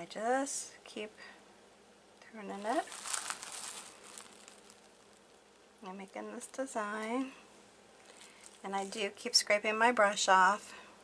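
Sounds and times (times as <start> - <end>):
low steady hum: 0.0 - 11.0
person speaking: 2.3 - 4.4.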